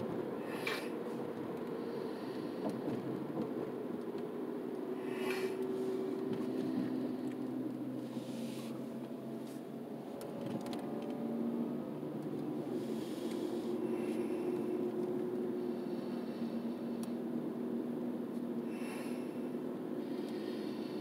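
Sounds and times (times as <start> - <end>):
car engine and tyre drone: 0.0 - 21.0.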